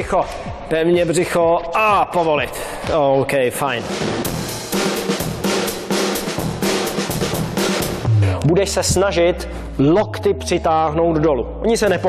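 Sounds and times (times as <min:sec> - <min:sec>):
music with busy drum beat: 0:03.6 - 0:09.8.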